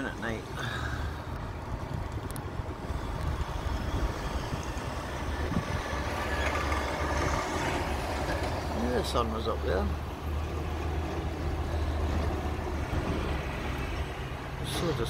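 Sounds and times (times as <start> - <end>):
road traffic rumble: 0.0 - 15.0
vehicle passing: 2.8 - 15.0.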